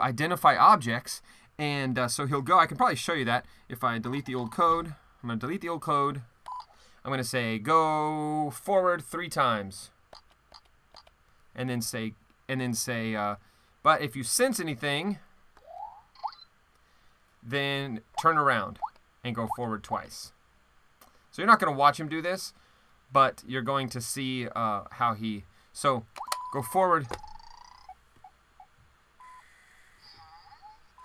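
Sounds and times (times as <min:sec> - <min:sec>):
wavering falling chirp: 0:15.6 - 0:16.5, 0:27.2 - 0:29.4, 0:30.0 - 0:31.0.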